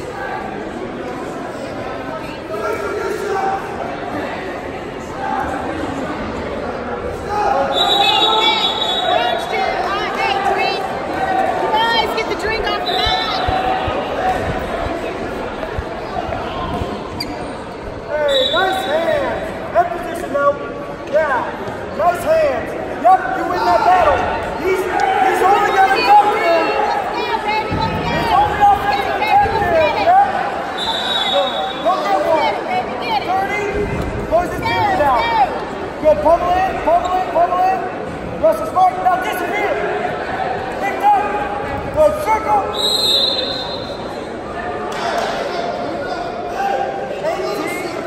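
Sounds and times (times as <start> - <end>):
people chattering: 0.0 - 48.0
shoe soles squeaking: 12.6 - 14.0, 16.6 - 17.6
shoes squeaking on mat: 16.7 - 17.6.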